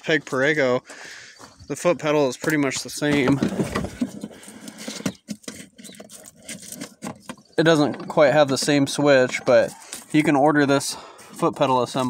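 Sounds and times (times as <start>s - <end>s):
hand handling plastic toy: 2.4s - 10.5s.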